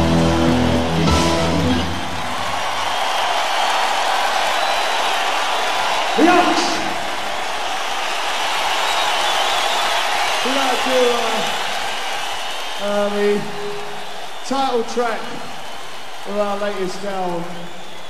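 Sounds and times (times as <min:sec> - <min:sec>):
crowd cheering and applause: 0:00.0 - 0:18.0
man's voice: 0:06.2 - 0:07.1, 0:16.3 - 0:17.5.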